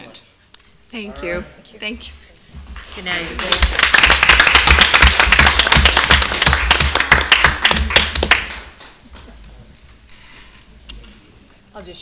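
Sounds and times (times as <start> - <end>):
small group applauding: 2.7 - 9.4.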